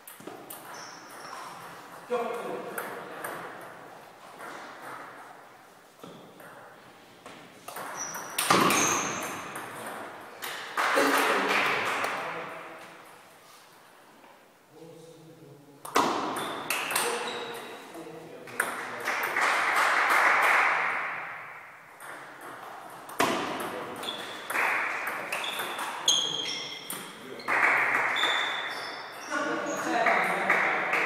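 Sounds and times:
table tennis ball hitting paddles: 6.0s - 12.2s, 15.9s - 17.7s, 18.5s - 29.2s.

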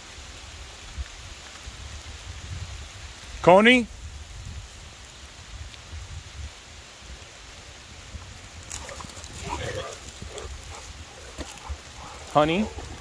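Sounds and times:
light rain hissing: 0.0s - 13.0s
wind rumble on microphone: 0.8s - 13.0s.

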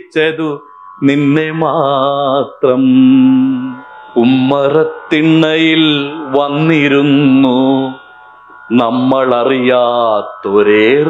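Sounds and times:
man singing chant-like tune: 0.0s - 11.0s.

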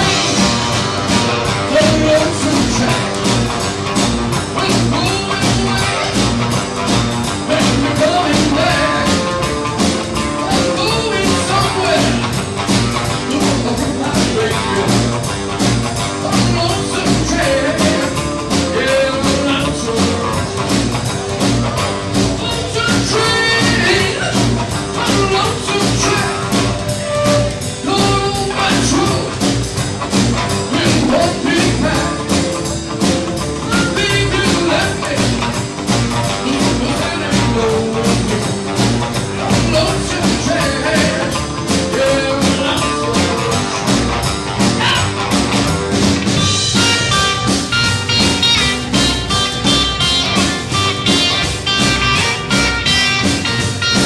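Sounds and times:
live rockabilly band playing: 0.0s - 54.0s.

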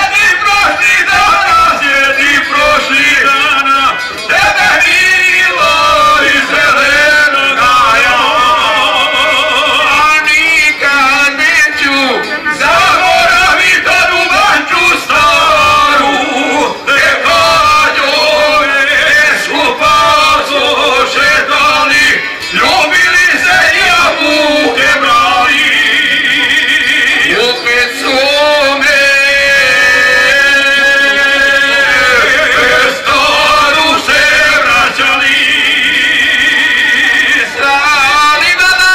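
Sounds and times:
men singing held notes: 0.0s - 38.9s.

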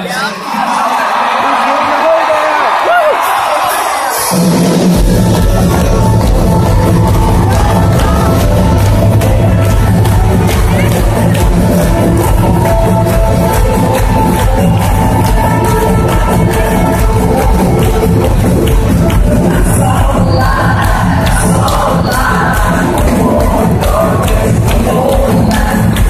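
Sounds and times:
crowd: 0.0s - 26.0s
live band playing amplified music: 3.0s - 26.0s
steady drum beat: 4.3s - 26.0s.

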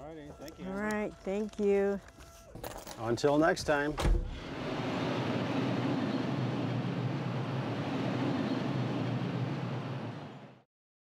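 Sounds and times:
road noise: 4.1s - 10.7s.

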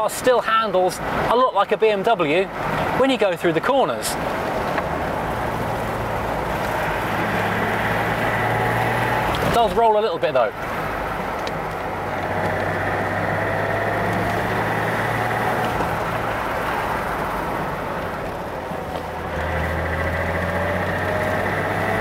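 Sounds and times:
road noise: 0.0s - 22.0s
car engine running: 4.2s - 22.0s.

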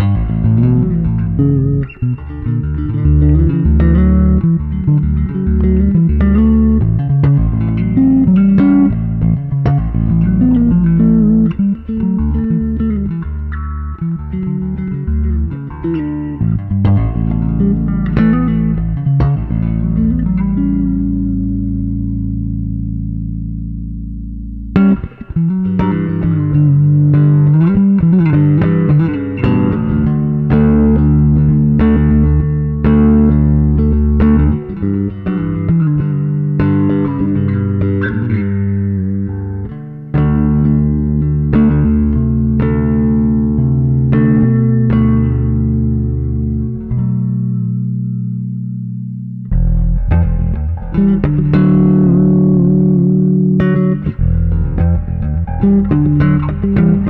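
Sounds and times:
electric bass guitar plucked: 0.0s - 57.0s.

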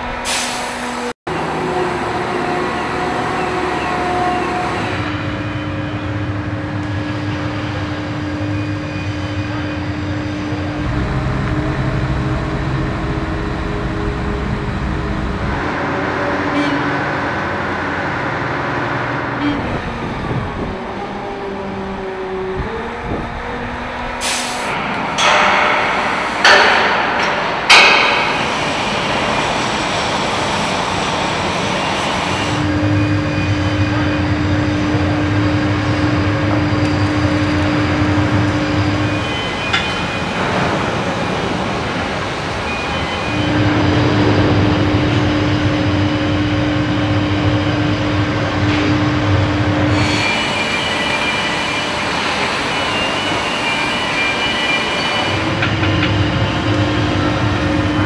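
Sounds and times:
steady machine hum: 1.3s - 39.7s
machine hissing bursts: 24.2s - 24.8s.

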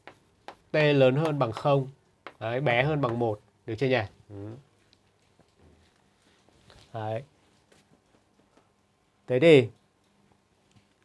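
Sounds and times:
man murmuring: 4.3s - 4.7s.

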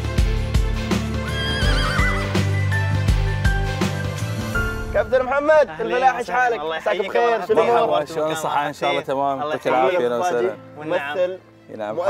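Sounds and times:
background music with steady beat: 0.0s - 12.0s
horse whinnying: 1.2s - 2.6s.

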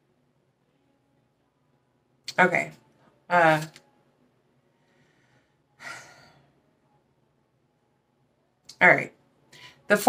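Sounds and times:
woman sighing: 5.8s - 6.6s.

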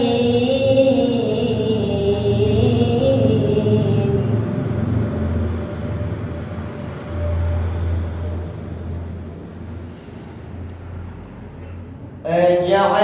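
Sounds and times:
sung recitation over loudspeaker: 0.0s - 6.5s, 11.6s - 13.0s
low steady rumble: 0.0s - 13.0s.

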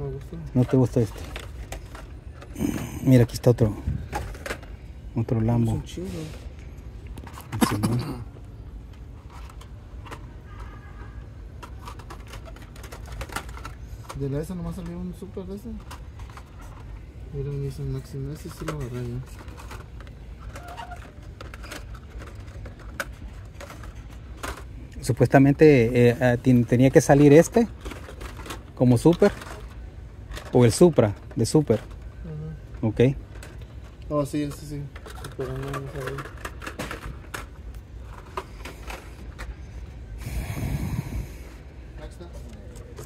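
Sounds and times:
toy cars clicking in blister packs: 0.1s - 4.8s, 8.9s - 39.6s
rough rustling with low rumble: 37.0s - 43.0s.

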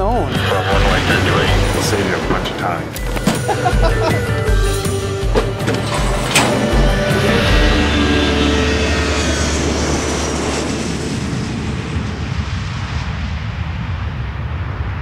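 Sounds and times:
jet engines roaring: 0.0s - 15.0s.

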